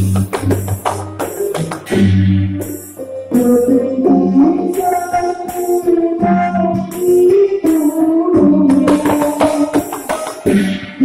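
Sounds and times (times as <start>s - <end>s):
hand drum strokes: 0.0s - 3.7s, 8.6s - 10.6s.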